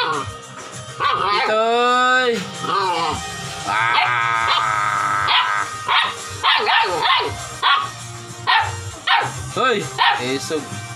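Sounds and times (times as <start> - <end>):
puppy yelping and barking: 0.0 - 0.3, 1.0 - 1.6, 5.3 - 9.4.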